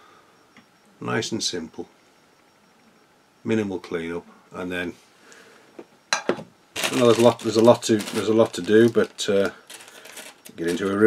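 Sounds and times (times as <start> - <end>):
plastic bag rustling: 6.7 - 11.0.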